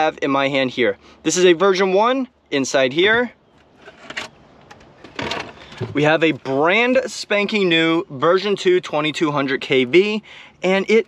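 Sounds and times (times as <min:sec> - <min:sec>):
plastic shell rustling scrape: 0:03.6 - 0:06.0.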